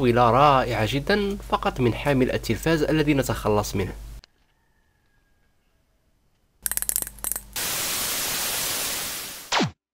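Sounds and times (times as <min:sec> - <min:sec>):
white noise static hiss: 0:07.2 - 0:09.5.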